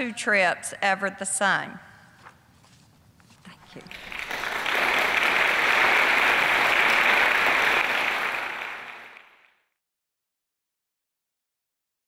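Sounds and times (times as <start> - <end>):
audience applauding: 3.8 - 9.6.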